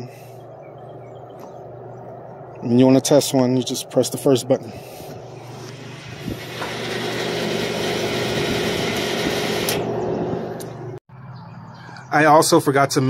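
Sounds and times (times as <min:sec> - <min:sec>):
vending machine motor hum: 0:00.0 - 0:11.0.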